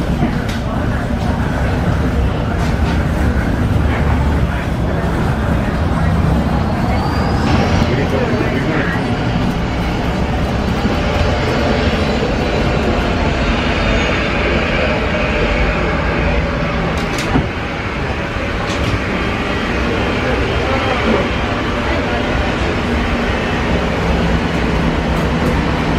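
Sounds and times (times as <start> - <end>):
aircraft and machinery rumble: 0.0 - 25.9
faint passenger voices: 0.0 - 25.9
high whine: 0.0 - 25.9.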